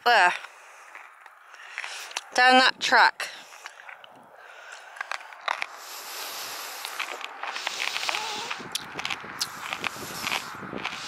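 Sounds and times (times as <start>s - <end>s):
clicks and crackles: 3.6s - 5.8s, 6.8s - 11.0s
footsteps on grassy ground: 5.1s - 11.0s.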